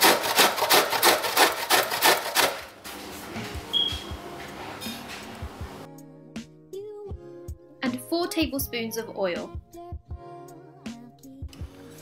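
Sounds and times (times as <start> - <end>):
jaggery rasping on metal grater: 0.0 - 2.7.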